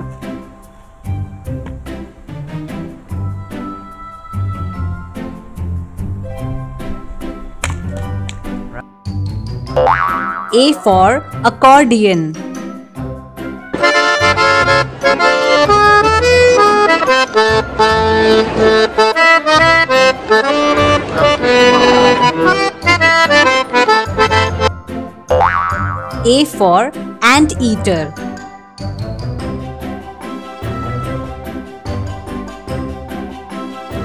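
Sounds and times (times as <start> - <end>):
cheerful children's music: 0.0 - 34.0
cartoon boing: 9.8 - 10.6, 25.3 - 26.2
accordion chords: 13.7 - 28.2.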